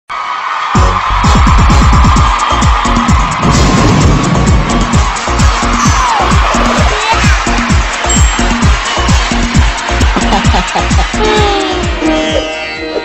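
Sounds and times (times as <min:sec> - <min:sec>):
electronic dance music: 0:00.7 - 0:13.0
heavy bass drum beat: 0:00.8 - 0:12.4.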